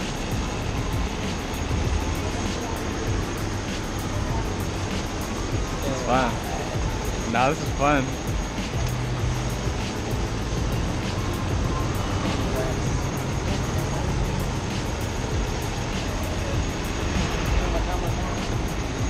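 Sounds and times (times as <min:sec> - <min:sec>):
go-kart engines droning: 0:00.0 - 0:19.0.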